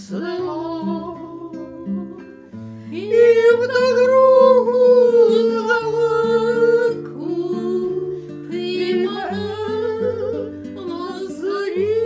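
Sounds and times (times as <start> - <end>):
acoustic guitar bass notes: 0.0 - 12.0.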